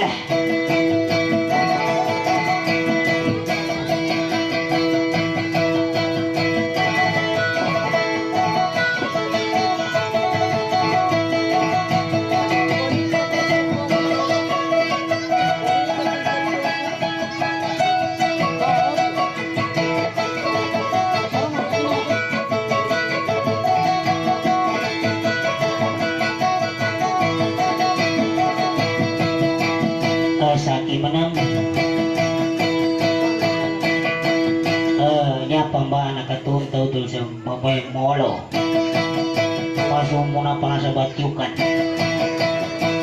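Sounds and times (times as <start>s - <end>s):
amplified boat lute melody: 0.0s - 37.4s, 38.3s - 43.0s.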